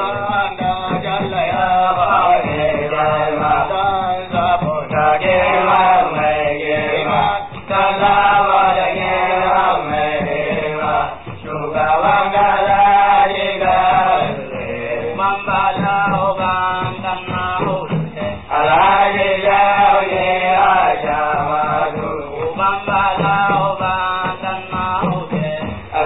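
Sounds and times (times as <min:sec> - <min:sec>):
musical accompaniment: 0:00.0 - 0:26.0.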